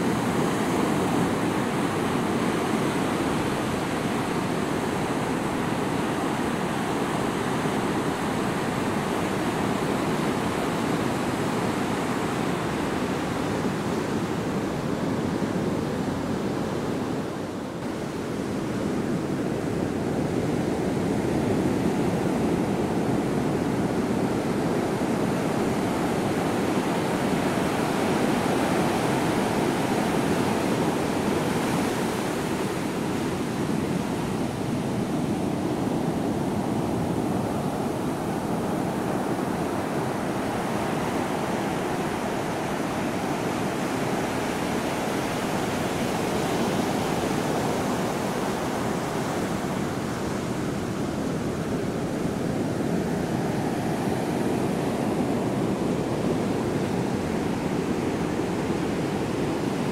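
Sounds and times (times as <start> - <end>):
ocean waves washing on beach: 0.0 - 59.9.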